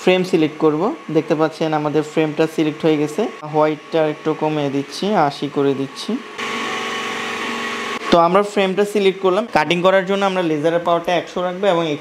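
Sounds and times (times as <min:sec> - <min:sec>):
small electric motor whirring: 0:00.1 - 0:08.3.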